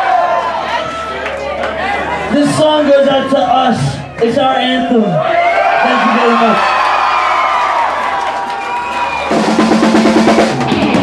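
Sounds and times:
rapid drum hits: 9.3 - 11.0
electric guitars: 9.6 - 11.0.

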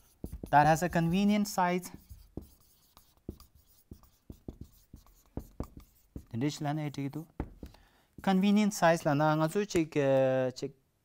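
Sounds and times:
marker writing on whiteboard: 0.0 - 9.2
man talking: 0.5 - 2.0, 6.3 - 7.3, 8.2 - 10.8.

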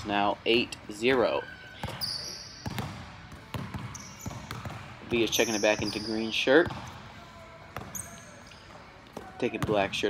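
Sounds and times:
basketball bouncing on floor: 1.8 - 6.0, 6.6 - 7.0, 9.2 - 10.0.

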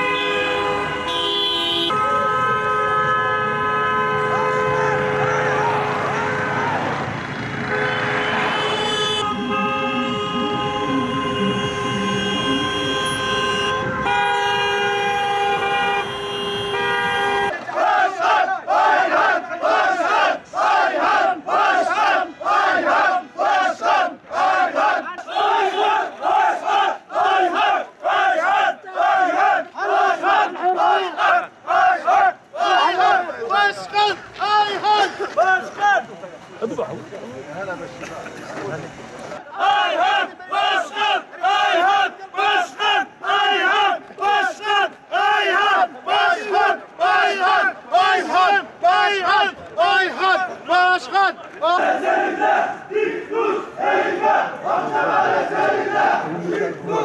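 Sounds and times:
car horns blasting: 0.0 - 17.6
crowd of men chanting: 17.5 - 36.1, 39.4 - 57.0.

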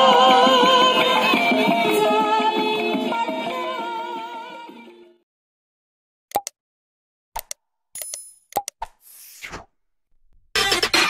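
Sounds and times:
short pops and clicks: 6.3 - 6.6, 7.4 - 9.7.

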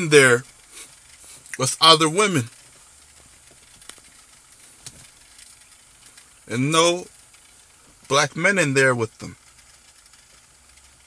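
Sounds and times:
faint background hiss: 0.0 - 11.0
faint clicks: 2.5 - 6.5.

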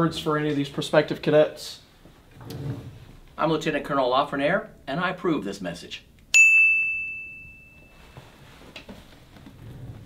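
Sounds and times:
bell-like ding: 6.4 - 8.2.

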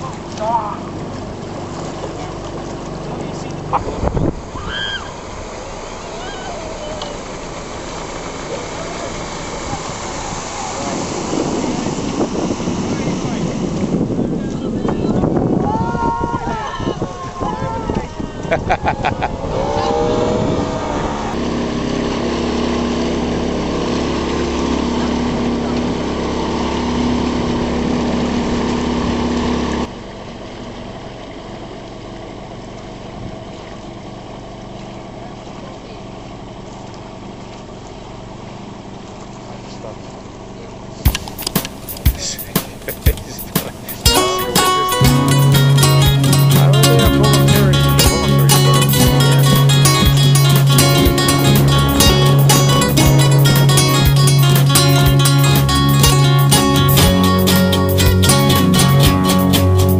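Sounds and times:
motorboat engine running: 0.0 - 15.7, 18.0 - 59.9
distant voices: 0.0 - 21.6, 41.0 - 57.6
water rushing around boat: 0.0 - 29.9, 41.1 - 59.9.

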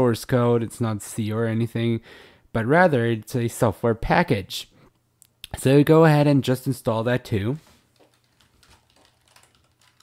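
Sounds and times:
faint keyboard keystrokes: 7.9 - 10.0.

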